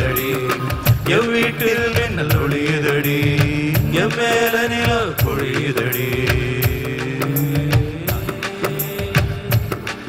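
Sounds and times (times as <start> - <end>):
live band playing film-song music: 0.0 - 10.0
percussion beat: 0.0 - 10.0
steady bass: 0.0 - 10.0.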